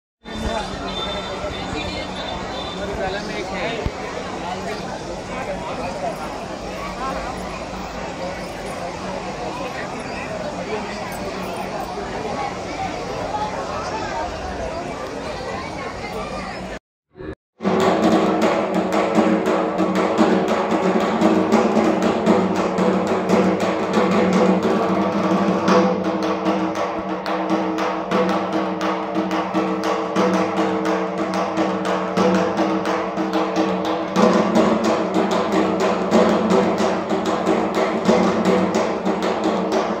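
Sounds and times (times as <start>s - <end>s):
barrel drums beaten with sticks: 17.6s - 40.0s.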